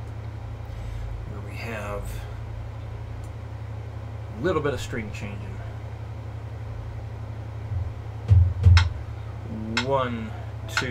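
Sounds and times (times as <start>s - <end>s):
guitar amplifier hum: 0.0s - 10.9s.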